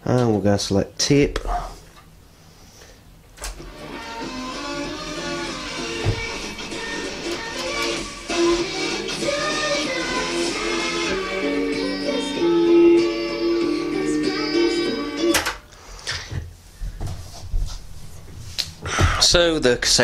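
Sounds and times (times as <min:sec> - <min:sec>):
music from boombox speakers: 0:03.7 - 0:15.3.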